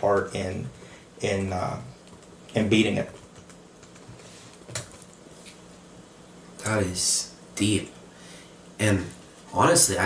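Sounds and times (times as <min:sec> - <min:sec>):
room hiss: 0:00.0 - 0:10.0.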